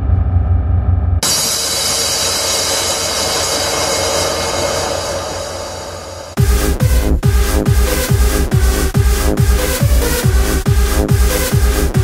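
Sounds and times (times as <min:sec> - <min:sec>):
white-noise sweep: 0:01.2 - 0:06.8.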